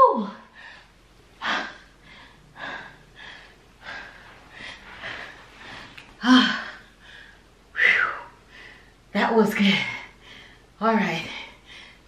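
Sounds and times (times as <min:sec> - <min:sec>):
woman breathing heavily: 0:00.2 - 0:09.0, 0:09.6 - 0:12.0.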